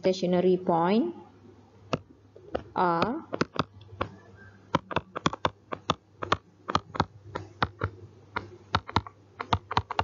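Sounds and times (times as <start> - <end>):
stylus tapping on tablet screen: 1.9 - 10.0.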